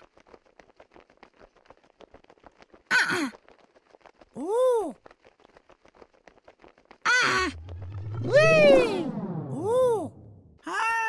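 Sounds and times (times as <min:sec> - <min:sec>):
voice-like cartoon sound effects: 0:07.2 - 0:11.0.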